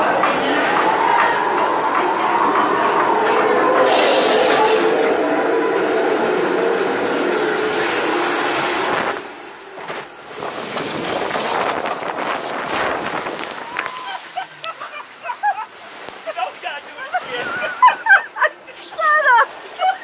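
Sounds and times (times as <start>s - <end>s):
rushing air and water: 0.0s - 20.0s
sharp water splash: 7.7s - 14.6s
boat rattling up chain lift: 9.8s - 13.6s.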